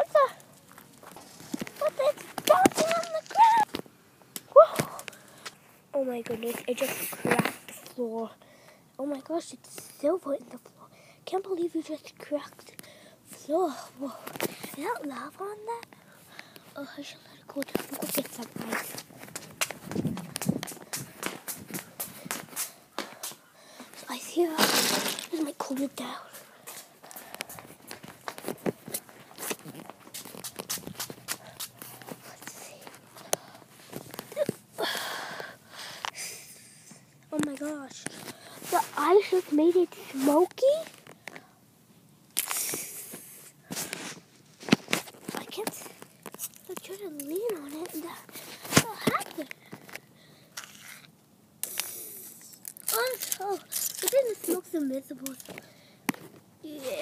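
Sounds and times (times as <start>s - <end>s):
rustling crinkling noise: 0.0s - 8.3s, 11.6s - 36.2s, 36.9s - 41.6s, 42.3s - 57.0s
objects being handled: 0.4s - 3.9s, 17.6s - 34.7s, 42.4s - 50.0s, 50.6s - 57.0s
footsteps clicking: 17.8s - 23.4s, 25.8s - 34.4s
short rustling: 37.6s - 41.1s.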